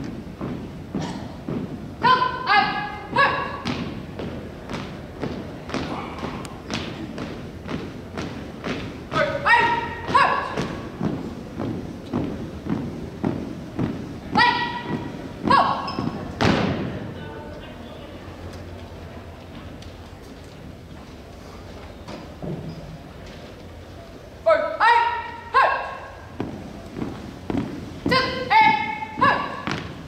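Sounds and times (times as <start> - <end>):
shouted commands: 2.0 - 3.6, 9.1 - 10.8, 14.4 - 15.9, 24.5 - 26.2, 28.1 - 29.7
heavy stomp: 3.2 - 17.1
shoes stepping on hardwood floor: 10.1 - 16.9, 26.4 - 30.0.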